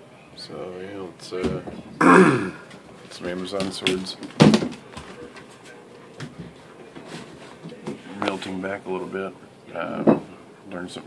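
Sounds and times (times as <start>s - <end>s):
man's short loud vocal noise: 2.0s - 2.6s.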